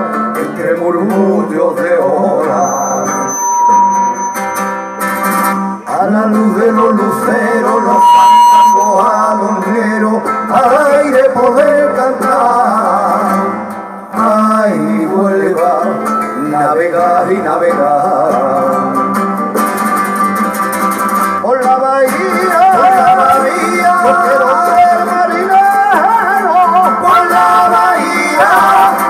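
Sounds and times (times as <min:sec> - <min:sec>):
acoustic guitars playing chords: 0:00.0 - 0:29.0
men singing melismatic melody: 0:00.4 - 0:03.4, 0:05.8 - 0:19.2, 0:21.4 - 0:29.0.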